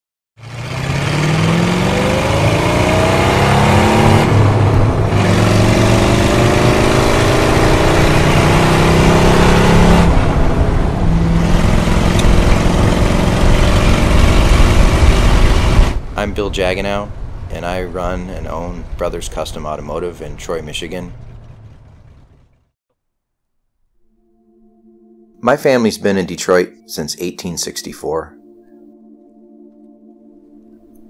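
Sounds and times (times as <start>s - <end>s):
car engine accelerating: 0.4s - 16.2s, 16.9s - 22.8s.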